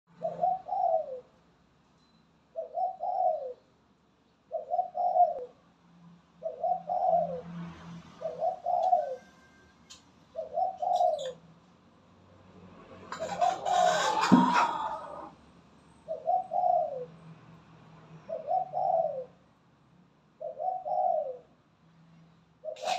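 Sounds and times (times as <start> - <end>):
dove cooing: 0.2 - 1.3, 2.6 - 3.6, 4.5 - 5.6, 6.4 - 7.4, 8.2 - 9.6, 10.3 - 11.4, 13.1 - 15.3, 16.1 - 17.1, 18.3 - 19.4, 20.4 - 21.5, 22.6 - 22.9.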